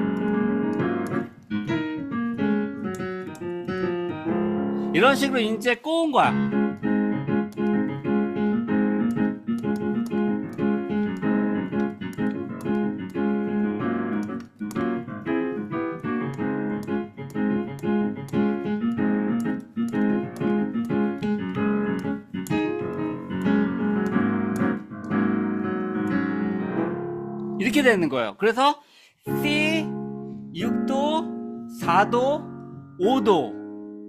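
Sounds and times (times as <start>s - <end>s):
digital piano chords and melody: 0.0s - 34.0s.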